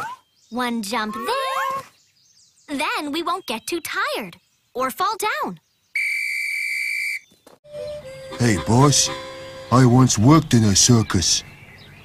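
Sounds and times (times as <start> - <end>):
whistle high note: 6.0 - 9.9.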